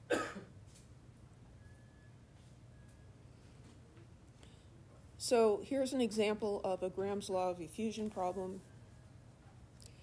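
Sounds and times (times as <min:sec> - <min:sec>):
woman coughing: 0:00.1 - 0:00.5.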